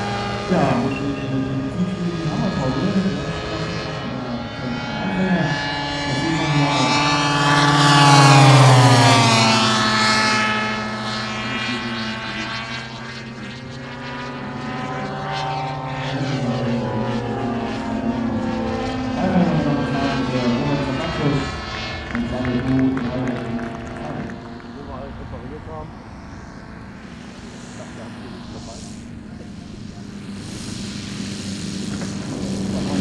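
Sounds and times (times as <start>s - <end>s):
model plane engines passing overhead: 0.0s - 33.0s.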